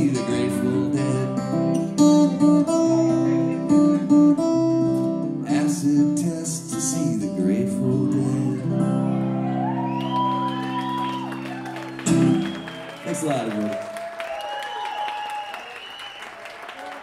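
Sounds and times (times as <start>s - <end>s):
audience whooping: 9.0s - 17.0s
audience applauding: 9.4s - 17.0s.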